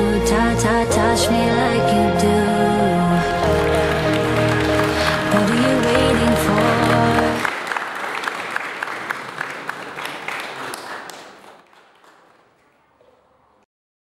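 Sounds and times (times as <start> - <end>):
background music: 0.0 - 7.5
crowd applauding: 3.1 - 13.6.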